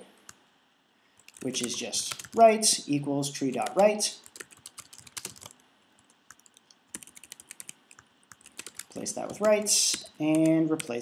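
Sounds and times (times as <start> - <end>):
computer keyboard typing: 1.2 - 2.5, 3.5 - 11.0.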